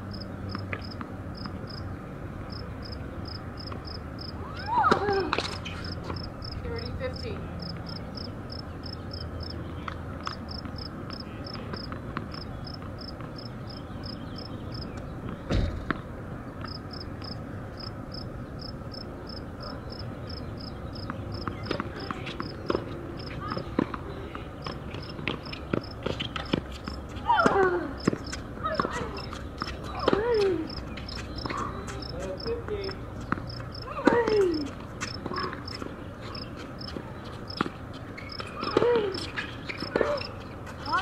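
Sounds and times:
insect chirping: 5.9s - 6.6s, 7.6s - 9.6s, 16.7s - 21.4s
thump: 15.5s - 16.0s.

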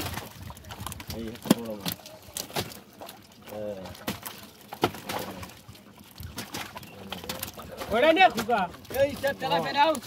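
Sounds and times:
clicks and rustles of fishing net: 0.0s - 10.0s.

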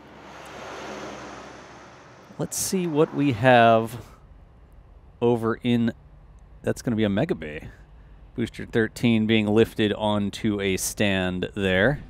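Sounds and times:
soft rushing wind-like noise: 0.0s - 5.2s.

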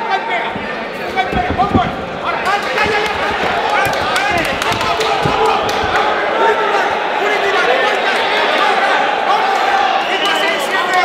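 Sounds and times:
footwork on canvas: 0.4s - 7.0s
people shouting: 0.5s - 11.0s.

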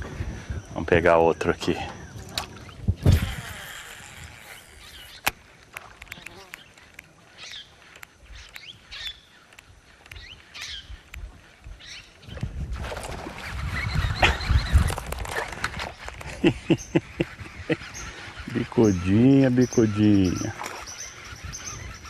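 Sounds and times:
birds chirping: 0.0s - 12.6s, 13.4s - 22.0s
sharp clicks: 7.9s - 11.8s.

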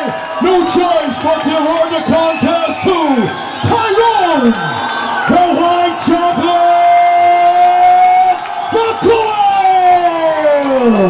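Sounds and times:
crowd cheering: 0.0s - 11.0s.

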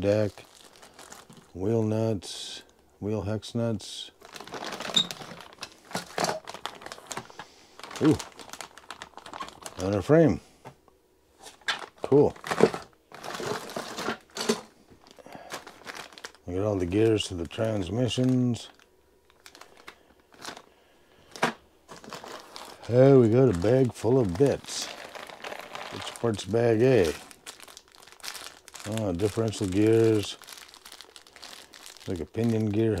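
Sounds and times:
plastic bags crinkling: 0.0s - 1.6s, 4.1s - 10.2s, 11.5s - 33.0s.

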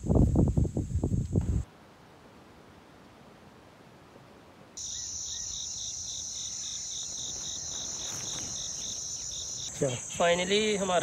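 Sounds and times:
insects shrilling: 4.8s - 11.0s.

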